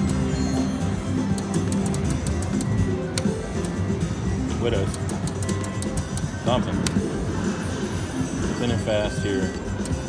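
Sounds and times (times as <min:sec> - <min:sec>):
slot machine game music: 0:00.0 - 0:10.0
sharp clicks and ticks: 0:01.2 - 0:03.8, 0:04.7 - 0:07.0, 0:09.8 - 0:10.0.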